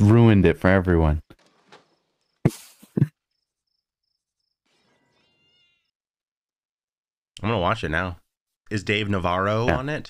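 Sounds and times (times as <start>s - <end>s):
faint high chirp: 4.7s - 6.0s
faint high-pitched call: 4.9s - 5.9s.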